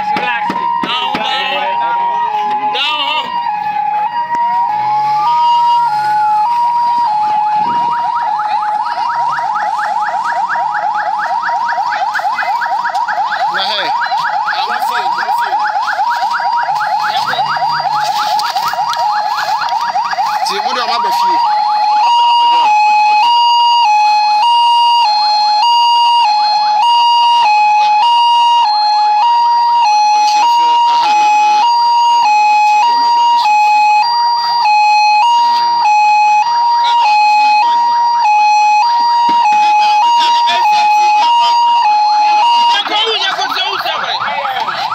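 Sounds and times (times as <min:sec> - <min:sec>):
two-tone vehicle siren: 0:00.0 - 0:44.9
warbling siren: 0:00.0 - 0:44.9.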